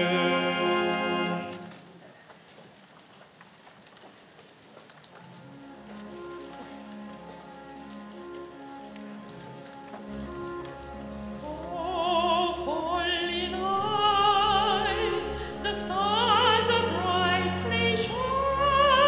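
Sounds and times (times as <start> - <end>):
faint rustling: 1.5 - 13.4
solo singer with vibrato: 11.4 - 19.0.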